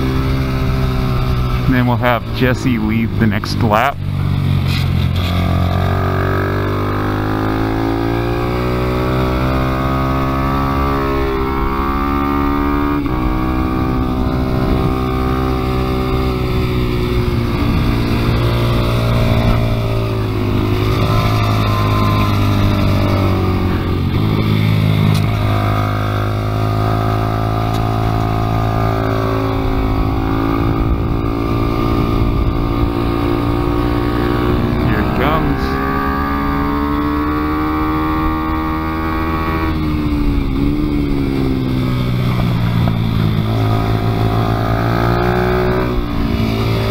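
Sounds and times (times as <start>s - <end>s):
motorcycle engine revving: 0.0s - 46.9s.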